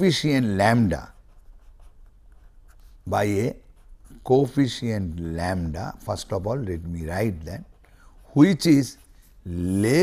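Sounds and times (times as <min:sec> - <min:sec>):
pen scratching on paper: 0:00.3 - 0:10.0.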